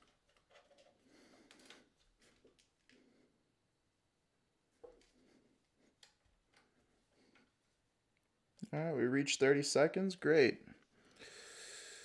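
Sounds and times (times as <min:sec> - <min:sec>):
faint clicks and rubbing: 0:00.0 - 0:03.4, 0:04.7 - 0:08.3.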